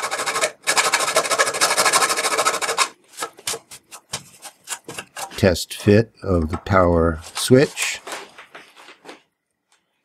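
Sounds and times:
file rasping on metal: 0:00.0 - 0:02.9.

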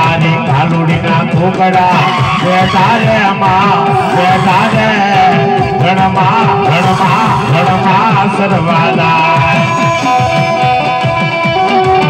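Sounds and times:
devotional folk singing over loudspeaker: 0:00.0 - 0:11.5.

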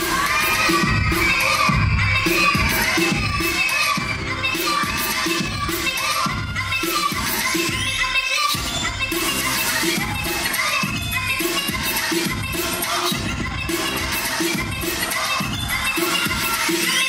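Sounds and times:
audience cheering and shouting: 0:00.0 - 0:07.8, 0:14.4 - 0:17.0
dance music with heavy beat: 0:00.0 - 0:17.0.

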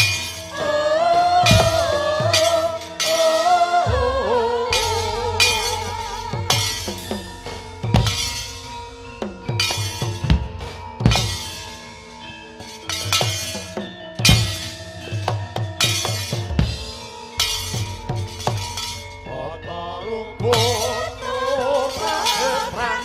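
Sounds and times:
drum strokes: 0:00.0 - 0:19.2
ringing gong-chime tones: 0:00.0 - 0:23.0.

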